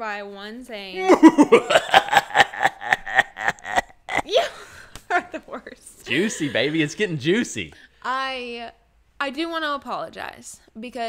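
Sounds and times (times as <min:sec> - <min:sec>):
person laughing in high bursts: 0:01.0 - 0:04.6.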